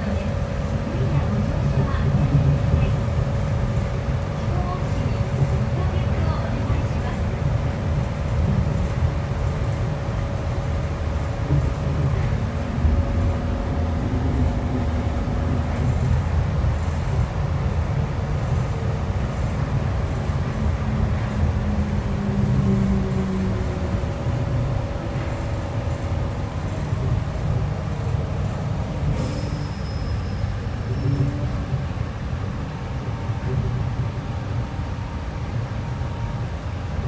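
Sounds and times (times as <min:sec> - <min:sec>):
train tyres rumbling: 0:00.0 - 0:37.0.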